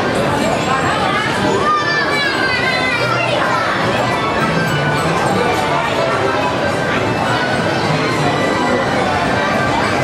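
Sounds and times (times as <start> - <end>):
crowd chatter: 0.0 - 10.0
children calling out: 0.9 - 10.0.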